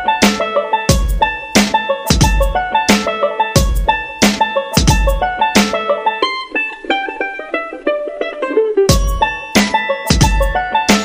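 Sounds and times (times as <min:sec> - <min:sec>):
music beat: 0:00.0 - 0:11.0
plucked string melody: 0:00.0 - 0:11.0.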